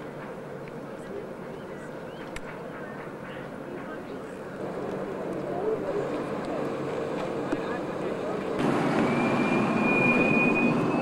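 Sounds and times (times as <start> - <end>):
murmur of voices: 0.0 - 8.6.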